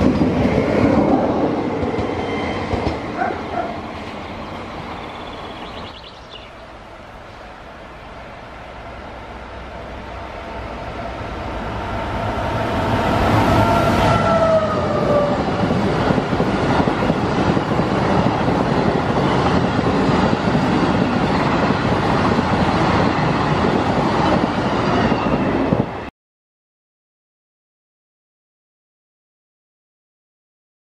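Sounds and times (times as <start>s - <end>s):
electric locomotive whine: 0.0s - 26.1s
train coaches rushing past: 0.0s - 26.1s.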